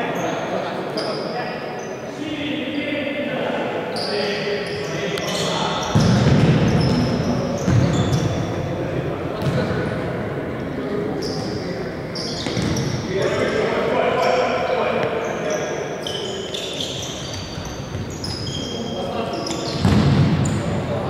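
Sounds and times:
shoes squeaking on floor: 0:01.0 - 0:02.0, 0:03.9 - 0:08.6, 0:11.2 - 0:13.6, 0:14.2 - 0:20.8.

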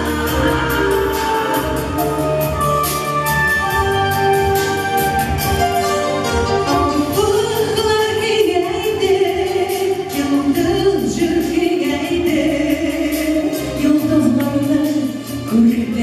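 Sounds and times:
woman singing pop ballad: 0:00.0 - 0:04.6, 0:06.9 - 0:16.0
backing track with steady beat: 0:00.0 - 0:16.0.

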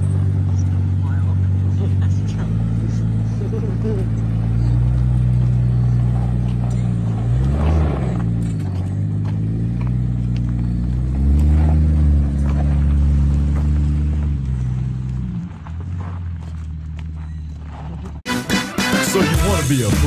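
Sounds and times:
vehicle engine running: 0:00.0 - 0:18.6.

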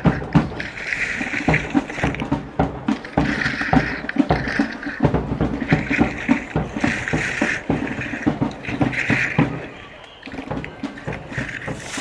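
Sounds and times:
skis clattering knocks: 0:00.0 - 0:12.0
skis scraping over snow: 0:00.0 - 0:12.0.

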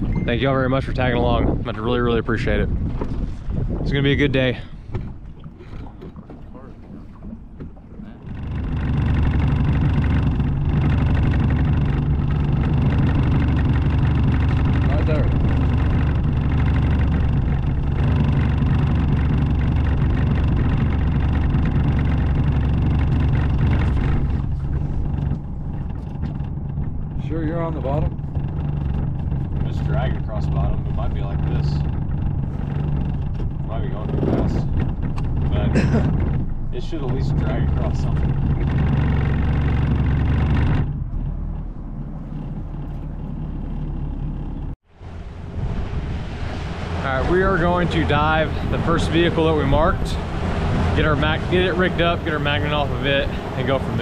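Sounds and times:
small boat motor running: 0:00.0 - 0:54.0.

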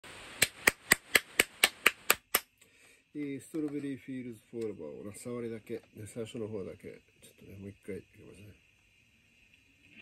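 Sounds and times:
hand claps at a steady beat: 0:00.4 - 0:02.5.

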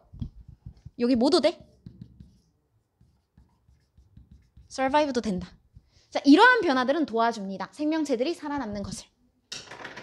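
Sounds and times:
marker writing on whiteboard: 0:00.0 - 0:06.9.

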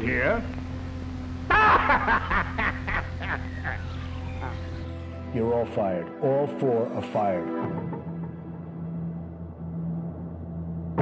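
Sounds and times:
low hum: 0:00.0 - 0:05.2
man laughing: 0:01.5 - 0:04.8.

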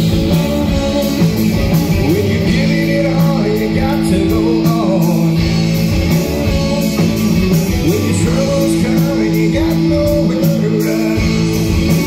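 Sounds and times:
drum kit: 0:00.0 - 0:12.0
electric guitars ringing: 0:00.0 - 0:12.0.

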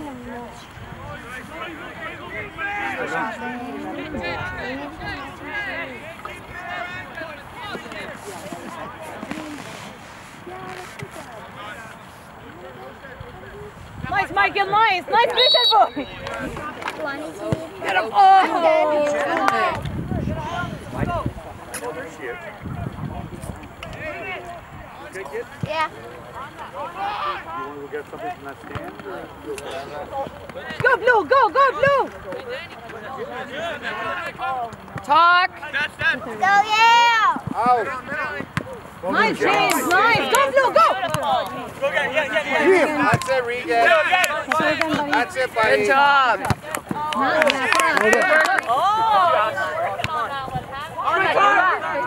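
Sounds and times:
players and spectators shouting: 0:00.0 - 0:09.7, 0:10.4 - 0:52.0
distant shouts of players: 0:00.9 - 0:08.3, 0:14.2 - 0:21.3.

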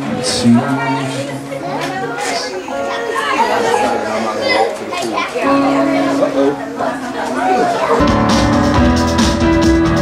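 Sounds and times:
chatter of voices: 0:00.0 - 0:08.7.

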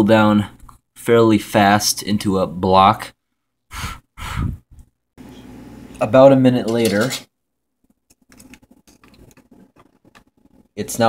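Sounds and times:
breathy exhale: 0:03.7 - 0:04.6.

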